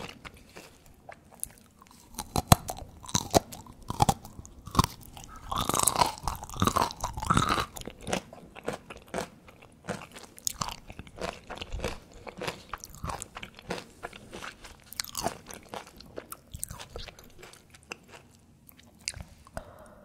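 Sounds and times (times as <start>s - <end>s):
crunchy chewing: 0.0s - 19.5s.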